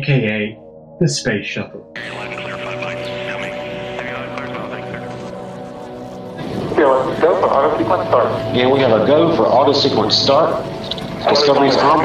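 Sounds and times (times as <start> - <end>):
faint indistinct voices: 2.0 - 12.0
steady hum: 2.0 - 12.0.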